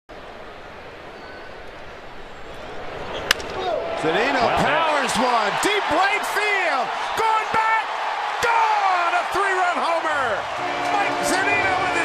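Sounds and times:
ballpark crowd noise: 0.1s - 12.0s
bat cracking a ball: 3.2s - 3.6s
commentator speaking: 4.0s - 12.0s.

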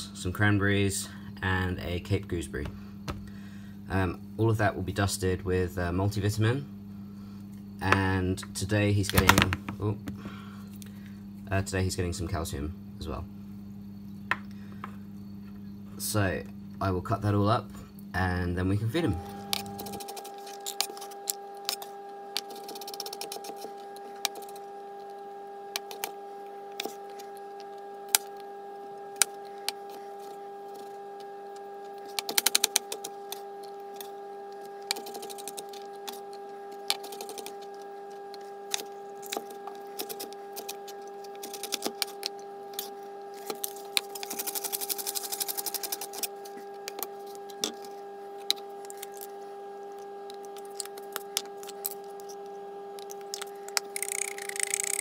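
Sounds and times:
steady hum: 0.0s - 55.0s.

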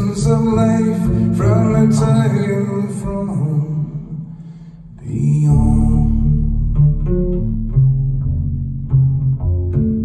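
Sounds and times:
double bass sustained low notes: 0.0s - 10.0s
low wordless vocal drone: 3.0s - 6.8s.

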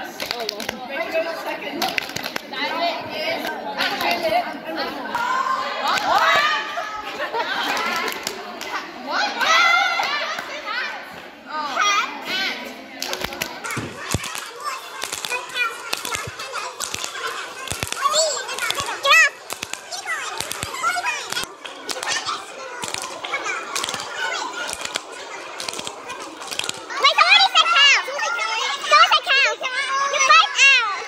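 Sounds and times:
loud shout: 5.1s - 7.1s, 9.1s - 10.5s
hand claps and slaps: 13.0s - 24.1s.

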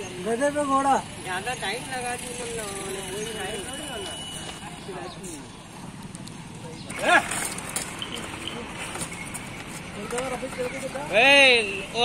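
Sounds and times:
street background: 0.0s - 12.0s.

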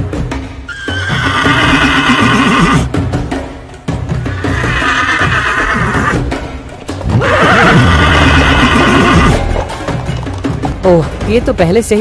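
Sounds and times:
horse neighing: 0.7s - 2.9s, 4.2s - 6.3s, 7.1s - 9.4s.

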